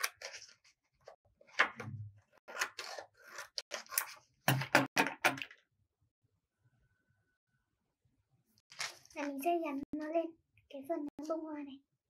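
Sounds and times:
paper rustling: 8.7 - 9.5.

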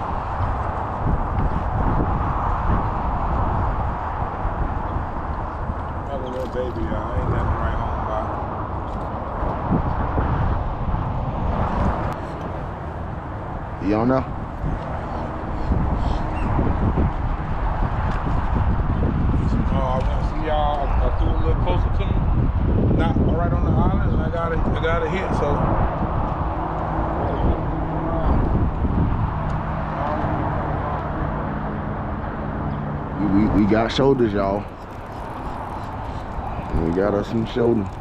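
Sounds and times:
wind on microphone: 0.0 - 38.0.

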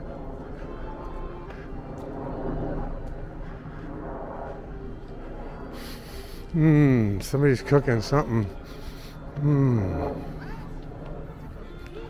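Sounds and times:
faint music: 0.0 - 12.0
murmur of distant voices: 0.0 - 12.0.

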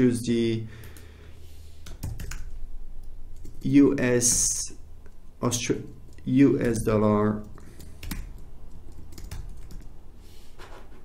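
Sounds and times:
typing on computer keyboard: 1.8 - 2.6, 3.4 - 3.7, 7.4 - 9.9.

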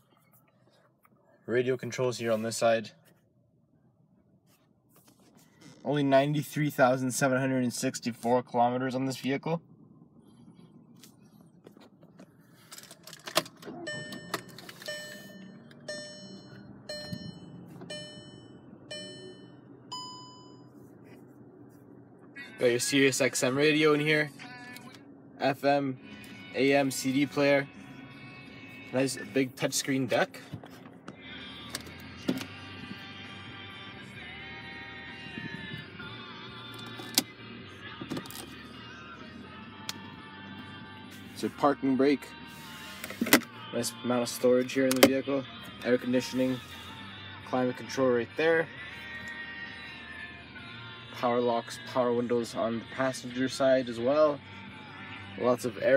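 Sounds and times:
music with singing on car radio: 4.3 - 55.9
dashboard warning chime: 13.7 - 20.8
higher electronic beep: 13.8 - 20.7.

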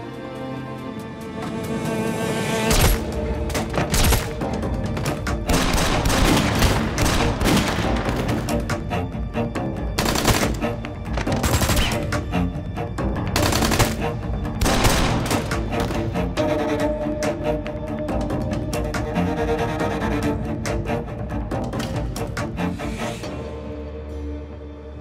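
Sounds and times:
dramatic music score: 0.0 - 25.0
gunshots: 5.5 - 8.3, 10.0 - 10.6, 13.4 - 15.7.

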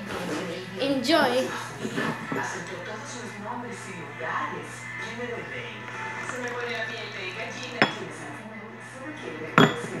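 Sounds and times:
television talk: 0.0 - 10.0
ceramic teaware clinking: 7.8 - 8.1, 9.6 - 10.0.

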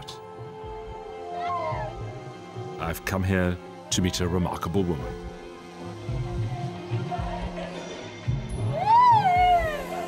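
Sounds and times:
background music of held notes: 0.0 - 10.0.

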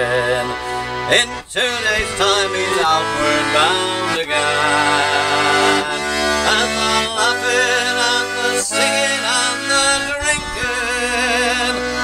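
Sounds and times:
accordion chords: 0.0 - 12.0
man singing folk ballad: 0.0 - 12.0.

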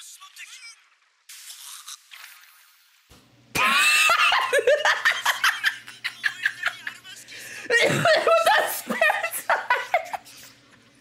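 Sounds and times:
person laughing hard: 3.6 - 10.4.

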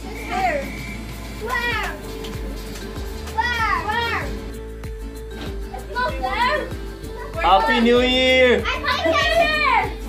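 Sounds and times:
background music: 0.0 - 10.0
child calling out: 8.6 - 10.0.

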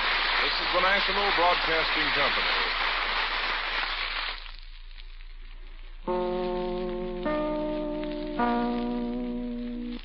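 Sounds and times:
old recording hiss and crackle: 0.0 - 10.0.

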